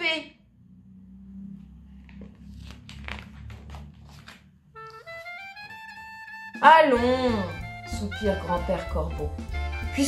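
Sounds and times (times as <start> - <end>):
paper page rustling: 1.9 - 5.4.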